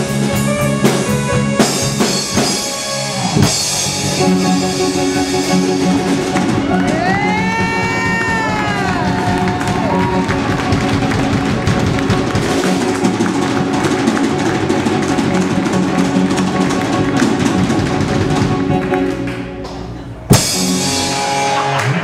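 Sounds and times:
live rock band playing: 0.0 - 22.0.

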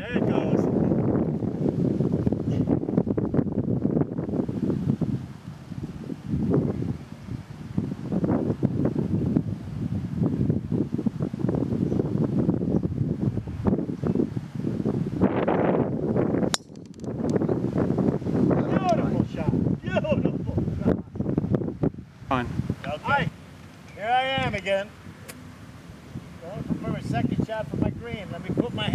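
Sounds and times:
wind buffeting microphone: 0.0 - 28.9
golf club striking ball: 16.4 - 17.4, 25.2 - 25.5.

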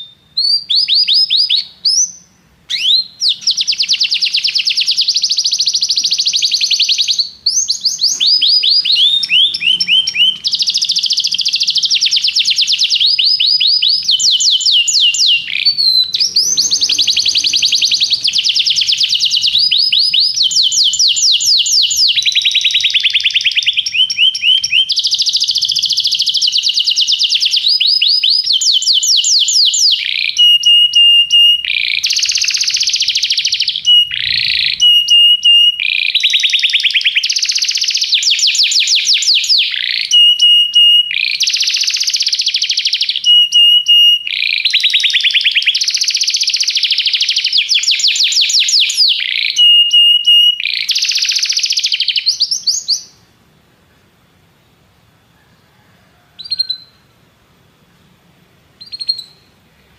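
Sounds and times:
canary singing trills: 0.0 - 53.3, 56.4 - 57.1, 58.7 - 59.9.

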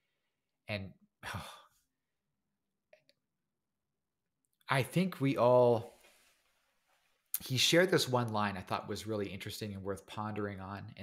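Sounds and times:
man sighing: 1.2 - 1.8.

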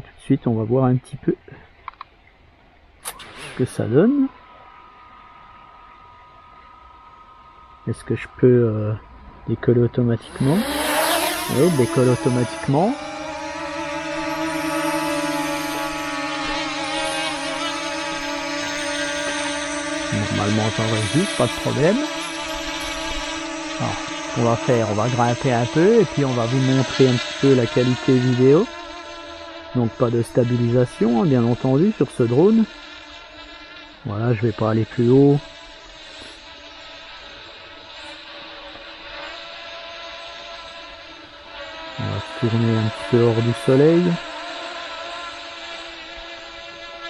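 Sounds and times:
quadcopter buzzing whine: 1.5 - 47.0.

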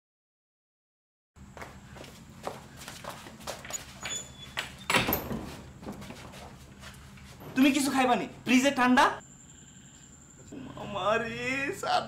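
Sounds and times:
wooden door clicking: 4.6 - 5.5.

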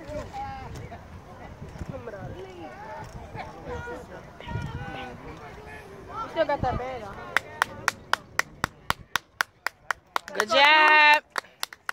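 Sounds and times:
person clapping hands: 7.4 - 11.9.

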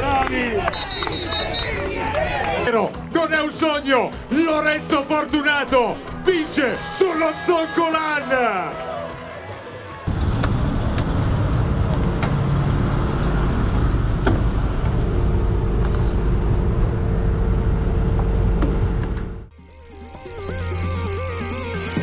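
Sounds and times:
wind and road rumble: 10.1 - 19.4
steady hum: 10.5 - 22.0
electronic logo sting: 19.5 - 22.0.

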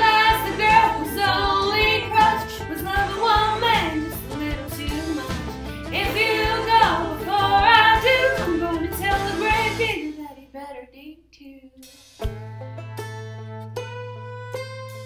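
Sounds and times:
picked string notes: 0.0 - 10.0, 12.2 - 15.0
country backing track: 0.0 - 10.4, 11.8 - 15.0
woman singing: 0.0 - 11.8.

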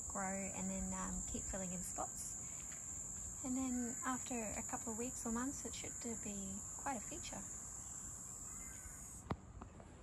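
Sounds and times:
insects droning: 0.0 - 9.3.

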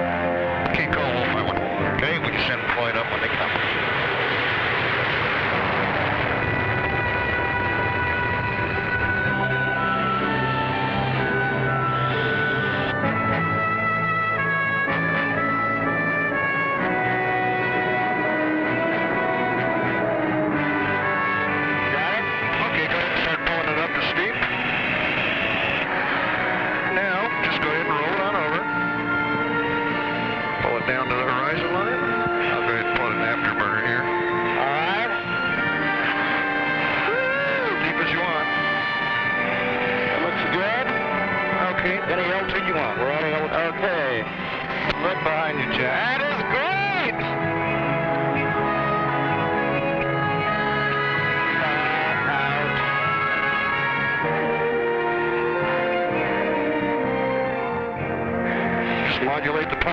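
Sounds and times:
instrumental soundtrack music: 0.0 - 59.9.

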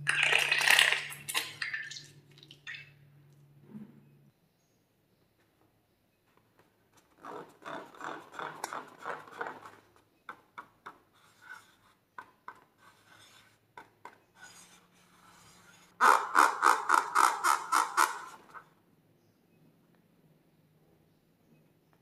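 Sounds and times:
fingers rubbing a balloon: 7.1 - 9.8.

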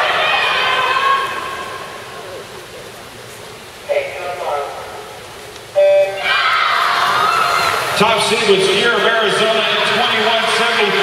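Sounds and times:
crowd cheering: 0.0 - 2.5, 5.8 - 11.0.

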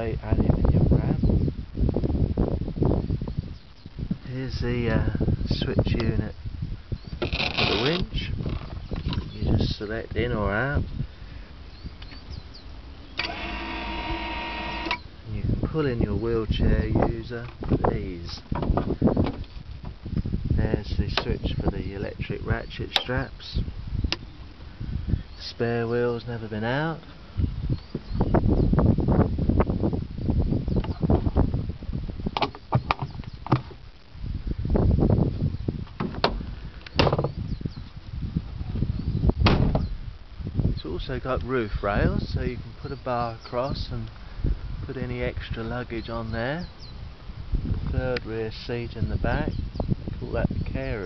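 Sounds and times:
winch motor whine: 13.2 - 15.0.

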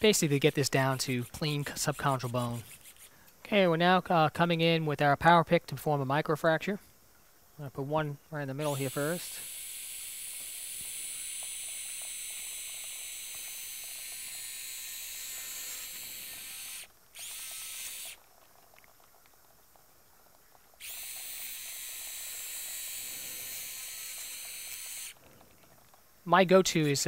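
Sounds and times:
surgical drill whirring: 0.0 - 3.1, 8.6 - 18.2, 20.8 - 25.2.

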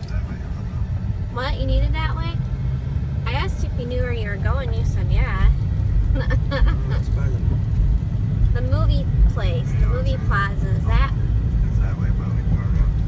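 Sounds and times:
people talking: 0.0 - 2.4, 3.3 - 5.6, 6.2 - 7.4, 8.5 - 13.0
car cabin rumble: 0.0 - 13.0.

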